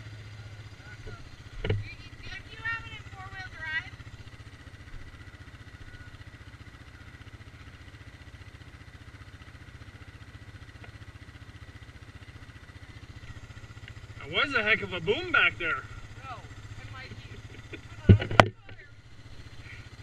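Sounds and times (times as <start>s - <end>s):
atv engine idling: 0.0s - 20.0s.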